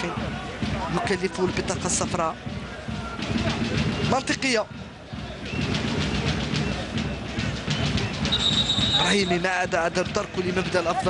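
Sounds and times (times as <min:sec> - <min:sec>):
stadium crowd noise: 0:00.0 - 0:11.0
referee's whistle: 0:07.8 - 0:09.4.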